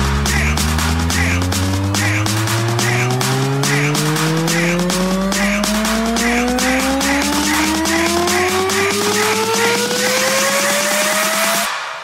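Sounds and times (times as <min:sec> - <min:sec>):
rising synth sweep: 0:00.0 - 0:11.7
electronic clap: 0:00.0 - 0:12.0
hi-hats: 0:00.0 - 0:12.0.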